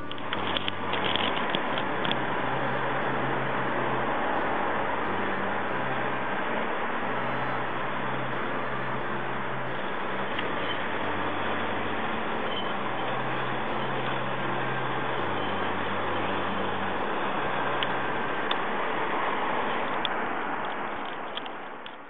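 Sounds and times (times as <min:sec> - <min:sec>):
low hum: 0:00.0 - 0:22.0
steady hiss: 0:00.0 - 0:22.0.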